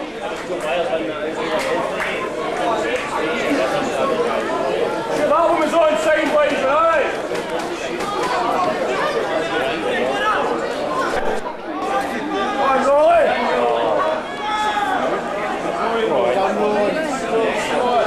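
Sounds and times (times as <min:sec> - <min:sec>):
people talking over one another: 0:00.0 - 0:18.0.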